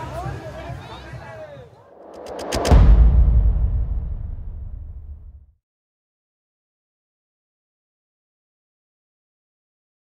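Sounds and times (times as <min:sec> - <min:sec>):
music: 0:00.0 - 0:05.4
deep rumbling boom: 0:02.0 - 0:05.6.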